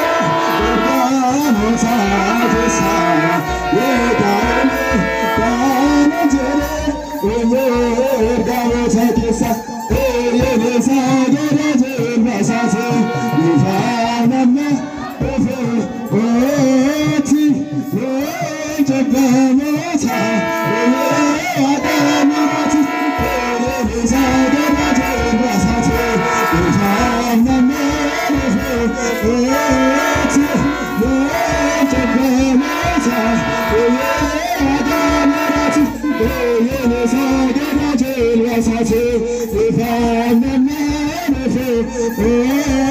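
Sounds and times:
low drum beat: 0:00.0 - 0:42.9.

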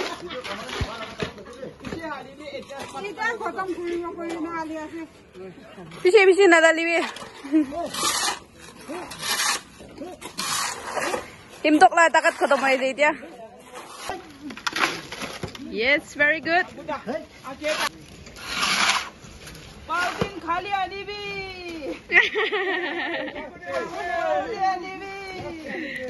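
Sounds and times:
shovels scraping wet concrete: 0:00.0 - 0:05.1, 0:05.8 - 0:21.0, 0:23.4 - 0:26.0.

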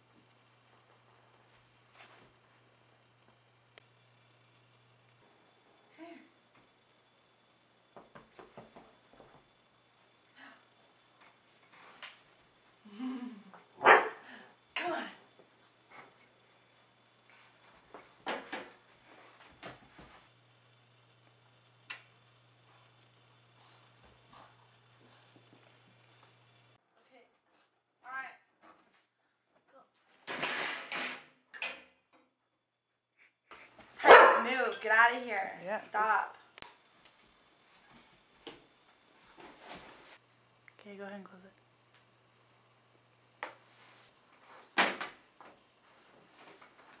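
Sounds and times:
dog barking: 0:13.8 - 0:14.2, 0:34.0 - 0:34.5.

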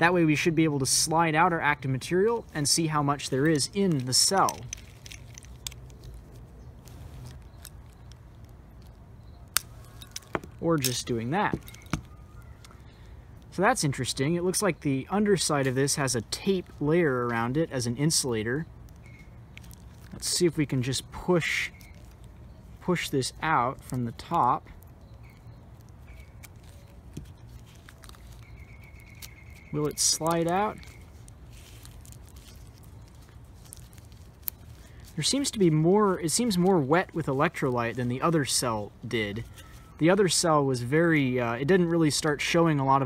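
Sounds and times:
small clicks and rustles: 0:03.2 - 0:12.8, 0:18.4 - 0:20.9, 0:23.7 - 0:35.6.

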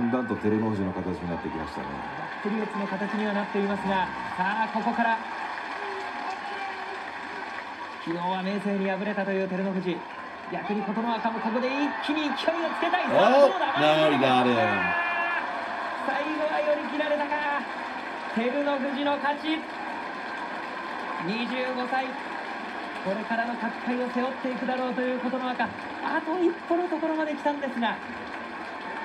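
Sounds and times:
man commenting: 0:10.6 - 0:15.0.

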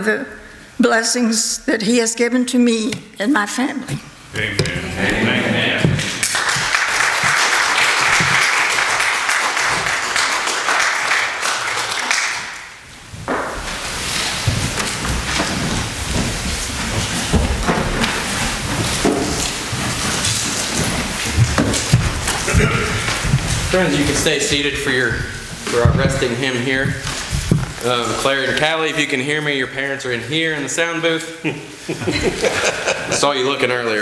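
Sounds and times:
congregation applauding: 0:05.6 - 0:12.8, 0:20.6 - 0:24.8
shuffling and movement: 0:12.9 - 0:28.6.

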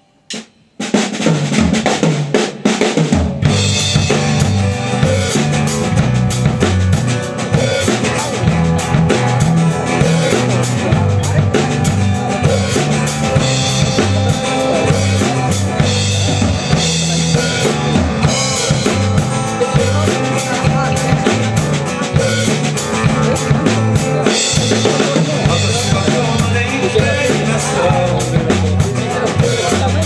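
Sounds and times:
live rock band playing: 0:00.0 - 0:30.0.

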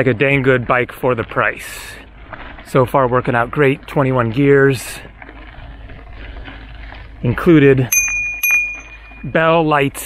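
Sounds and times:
bicycle tyres rolling on gravel: 0:00.0 - 0:10.0.

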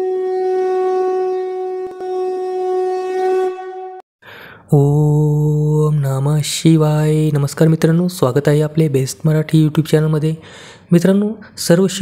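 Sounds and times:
conch shell blown: 0:00.0 - 0:04.0.

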